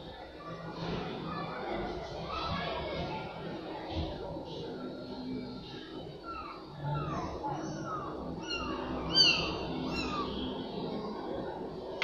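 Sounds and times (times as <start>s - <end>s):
kittens mewing: 6.3s - 10.4s.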